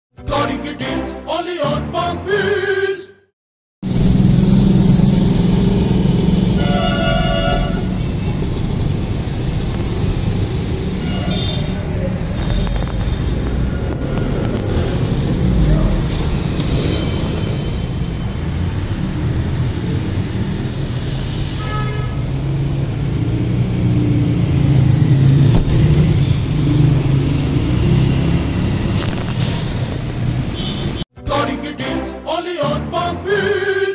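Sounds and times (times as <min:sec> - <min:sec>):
road traffic rumble: 0:03.8 - 0:31.1
vehicle horn honking: 0:06.5 - 0:08.3, 0:11.0 - 0:11.8, 0:21.3 - 0:22.3.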